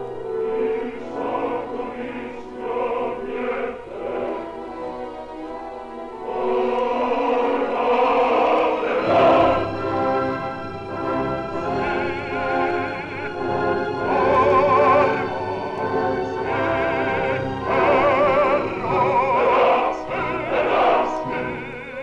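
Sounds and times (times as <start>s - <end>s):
orchestra and choir performing: 0.0s - 22.0s.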